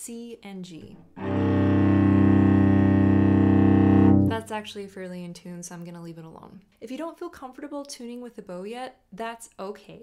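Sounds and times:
cello double stop bowed: 0:01.1 - 0:04.5.

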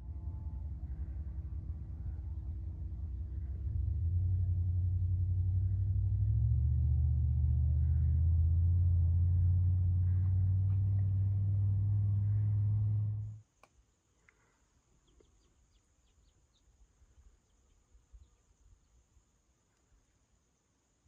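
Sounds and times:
low droning hum: 0:00.0 - 0:13.4.

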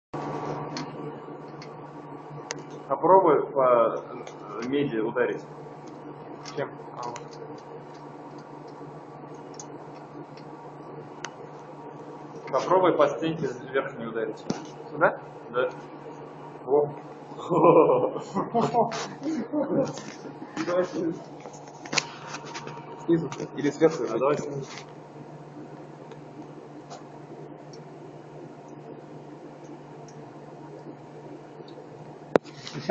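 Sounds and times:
low electrical hum: 0:00.2 - 0:32.9.

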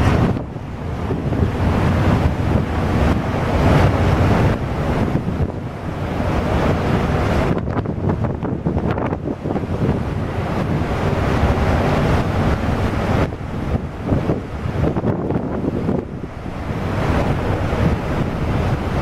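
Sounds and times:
ship rumbling through ice: 0:00.0 - 0:19.0
wind buffeting microphone: 0:00.0 - 0:19.0.

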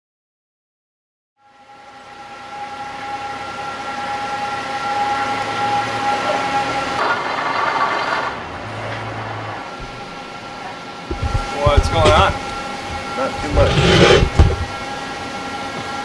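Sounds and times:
machinery whining: 0:01.4 - 0:16.0.

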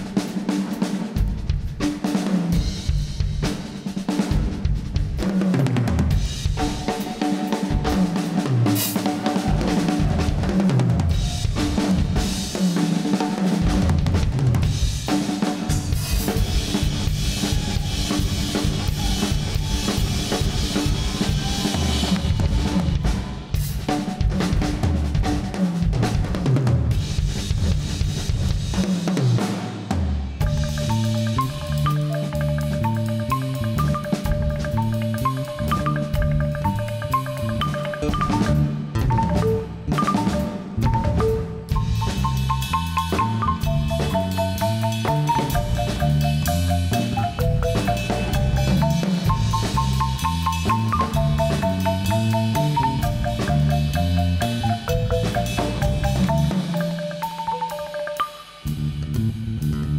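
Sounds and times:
drum kit playing: 0:00.0 - 0:59.9
instrumental ensemble held tones: 0:06.1 - 0:25.6, 0:30.4 - 0:59.9
cymbals: 0:14.6 - 0:25.9, 0:26.9 - 0:59.9.

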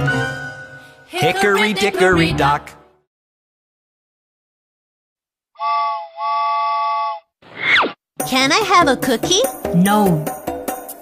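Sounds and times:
cartoon train whistle: 0:05.6 - 0:07.3.

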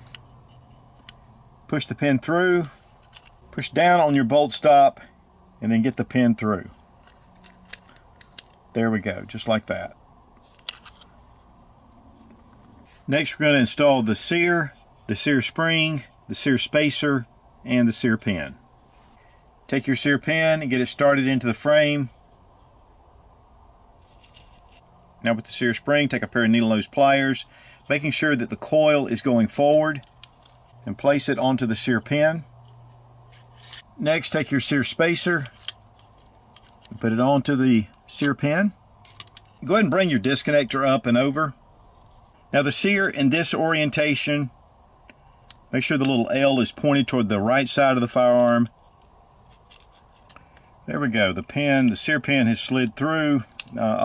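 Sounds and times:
light clicks of steel parts: 0:00.0 - 0:01.3, 0:02.5 - 0:04.2, 0:05.9 - 0:09.4, 0:27.2 - 0:30.8, 0:35.2 - 0:37.2, 0:39.0 - 0:39.7, 0:45.0 - 0:46.2, 0:48.8 - 0:50.7, 0:51.8 - 0:54.0
low steady hum: 0:00.0 - 0:54.0.

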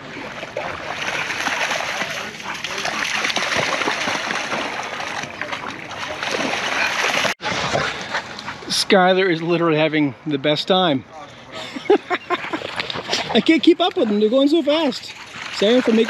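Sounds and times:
dogs splashing through water: 0:00.0 - 0:08.6, 0:12.2 - 0:16.0.

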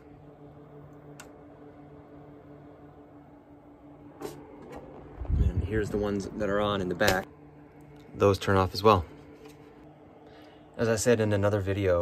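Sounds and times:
cooling fans humming: 0:00.0 - 0:12.0.

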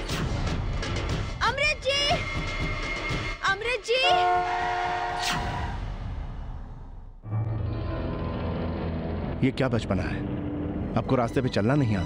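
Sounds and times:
long car horn blast: 0:04.0 - 0:05.2.

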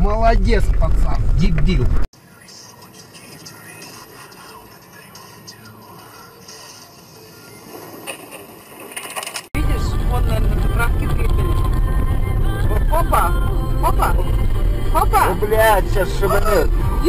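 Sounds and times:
indistinct low sounds: 0:00.0 - 0:02.1, 0:09.6 - 0:17.0.

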